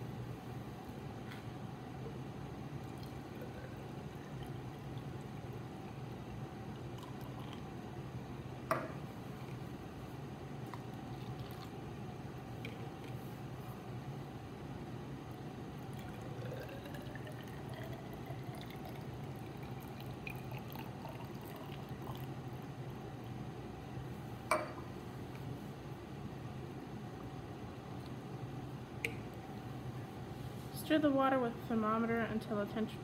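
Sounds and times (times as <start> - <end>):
water pouring into cylinder: 2.7 - 7.9, 10.6 - 11.8, 15.4 - 23.3
water trickling: 15.5 - 23.0.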